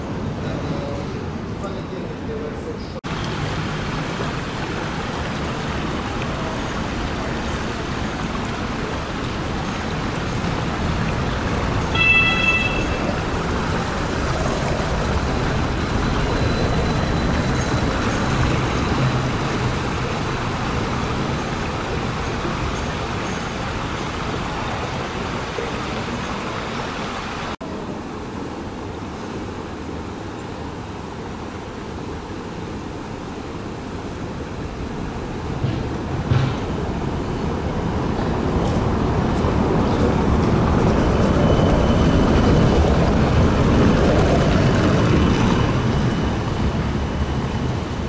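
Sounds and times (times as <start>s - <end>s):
tyres and street traffic rumble: 0.0s - 48.0s
trolleybus passing: 3.1s - 48.0s
tooted horn tone: 11.9s - 13.3s.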